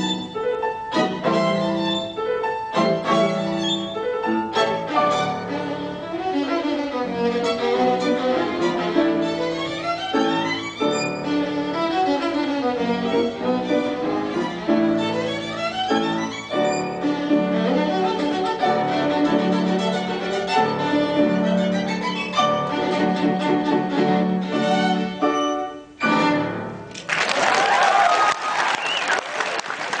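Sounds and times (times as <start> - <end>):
solo violin playing: 0.0 - 26.8
audience applauding: 26.9 - 30.0.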